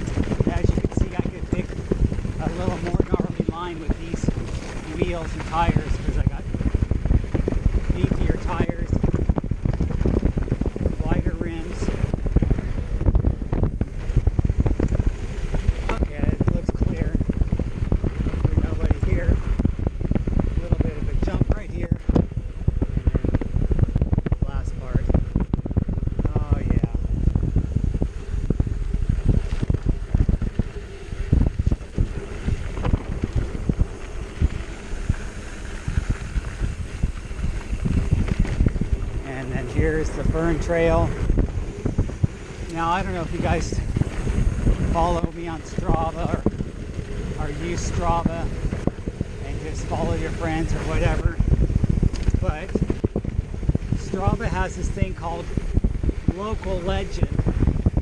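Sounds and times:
bike clattering over bumps: 0.0 - 26.3, 26.9 - 58.0
wind buffeting microphone: 0.0 - 58.0.

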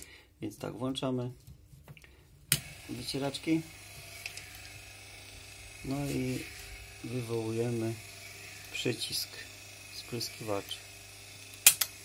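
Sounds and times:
wiper motor humming and whining: 2.6 - 12.0.

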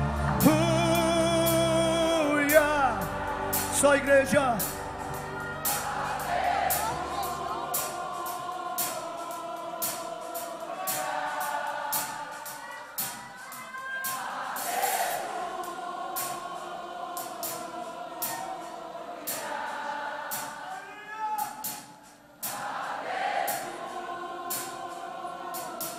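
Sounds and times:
band playing: 0.0 - 19.0
choir singing held notes: 0.0 - 25.9
steady drum beat: 0.0 - 25.9.

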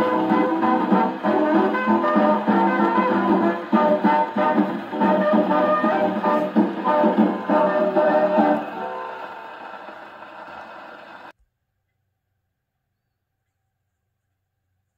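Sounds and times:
dance band with brass on gramophone: 0.0 - 11.3.

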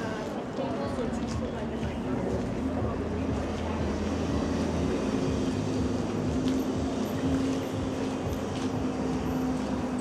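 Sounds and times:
street noise: 0.0 - 10.0.

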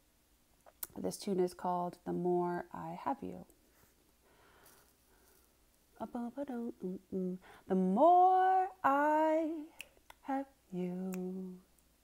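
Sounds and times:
soft breath: 3.6 - 5.7, 7.4 - 7.7.

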